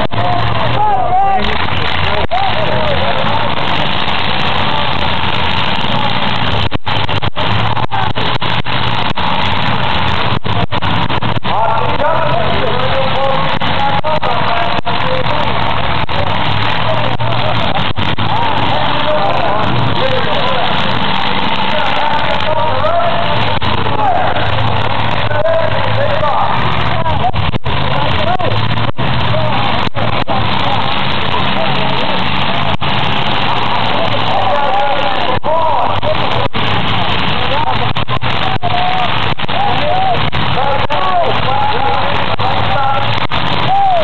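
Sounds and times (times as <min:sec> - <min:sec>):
car engines revving: 0:00.0 - 0:44.0
cars ramming each other: 0:00.0 - 0:44.0
crowd voices din: 0:00.0 - 0:44.0.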